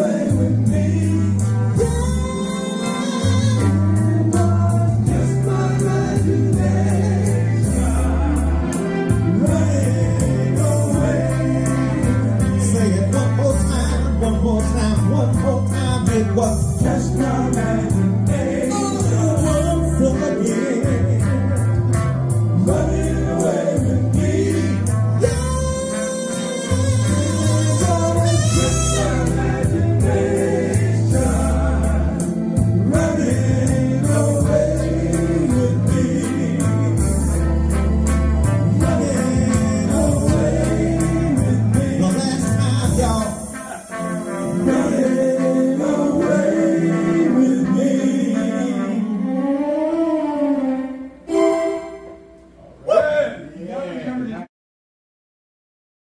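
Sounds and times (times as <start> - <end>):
steady cymbal beat: 0.0 - 45.5
bass line: 0.0 - 47.9
men singing in harmony: 0.0 - 49.5
band backing: 0.0 - 52.8.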